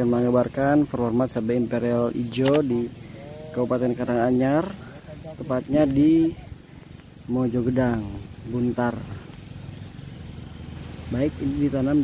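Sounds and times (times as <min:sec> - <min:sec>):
motor engine hum: 0:00.0 - 0:12.0.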